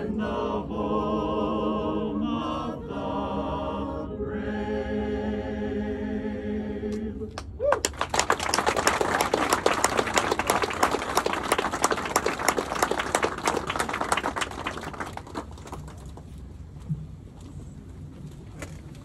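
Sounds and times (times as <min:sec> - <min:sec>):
audience applauding: 0:07.7 - 0:16.2.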